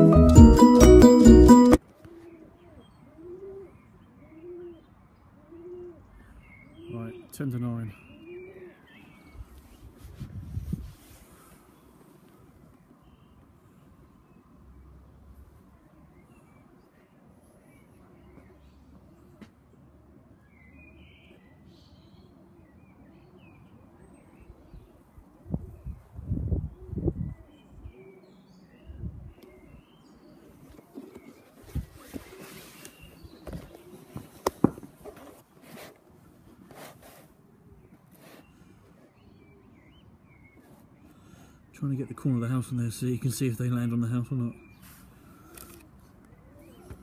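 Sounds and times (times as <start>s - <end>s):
small birds chirping: 20.4s - 36.0s, 36.9s - 47.0s
sharp handling clicks and rustles: 30.6s - 37.2s.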